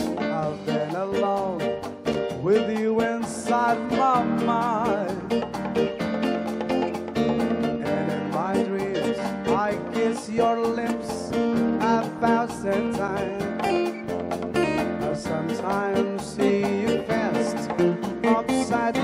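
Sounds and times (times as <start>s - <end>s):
guitar melody with bent notes: 0.0s - 9.7s, 13.4s - 15.1s, 15.7s - 19.0s
bass: 0.0s - 19.0s
live band playing: 0.0s - 19.0s
steady percussion beat: 0.0s - 19.0s.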